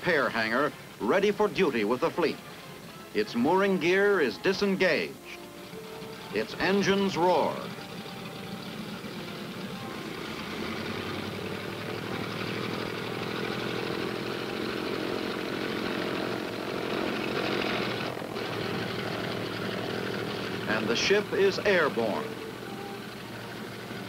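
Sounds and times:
propeller engines roaring: 0.0s - 24.0s.

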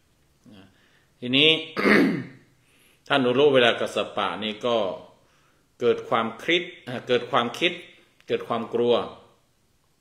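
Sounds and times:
man speaking: 0.4s - 2.3s, 3.1s - 5.2s, 5.8s - 9.4s
man clearing throat: 1.8s - 2.4s.

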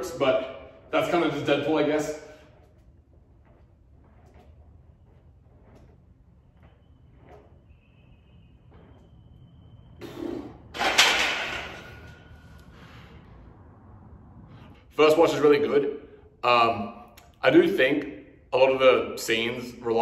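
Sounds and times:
faint breathing: 12.3s - 13.6s.

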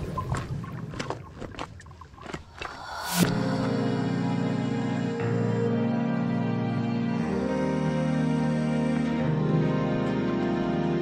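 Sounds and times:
rising whoosh: 2.6s - 4.6s
bass-heavy music: 3.0s - 11.0s
music with sustained held tones: 3.1s - 11.0s.

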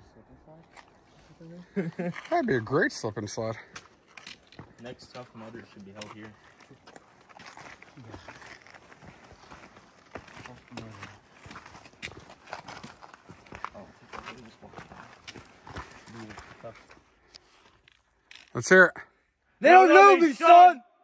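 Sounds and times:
footsteps on rocky trail: 3.5s - 18.4s
trekking poles clicking on stone: 3.7s - 17.0s.

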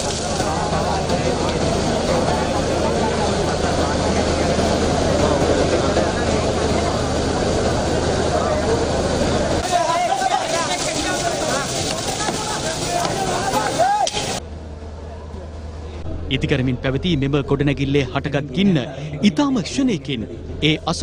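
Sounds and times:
low engine drone: 0.0s - 9.6s, 14.2s - 21.0s
dense din of voices: 0.0s - 21.0s.

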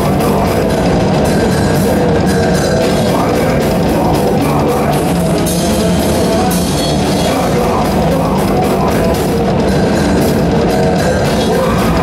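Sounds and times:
distorted electric guitars: 0.0s - 12.0s
fast drum kit and cymbals: 0.0s - 12.0s.

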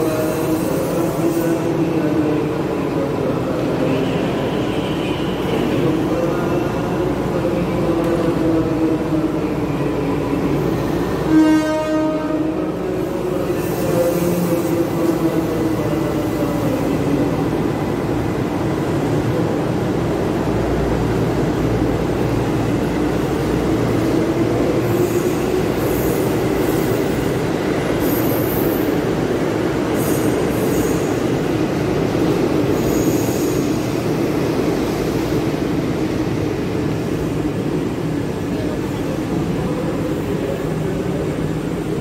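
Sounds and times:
train wheels rumbling on rails: 0.0s - 42.0s.

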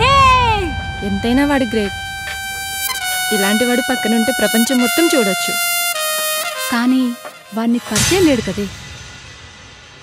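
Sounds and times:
voice: 0.0s - 2.0s, 3.3s - 5.6s, 6.7s - 8.7s
high held music note: 0.0s - 8.8s.

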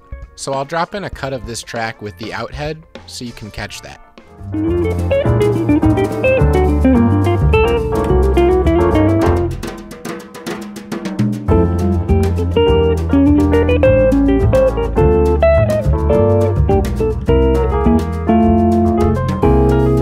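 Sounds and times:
bass line: 4.4s - 9.7s, 11.5s - 20.0s
guitar melody: 4.4s - 9.7s, 11.4s - 20.0s
drum kit played with sticks: 4.4s - 20.0s.

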